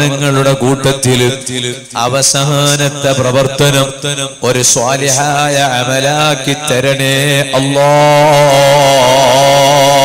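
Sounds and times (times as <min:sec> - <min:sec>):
man chanting through a microphone: 0:00.0 - 0:10.0.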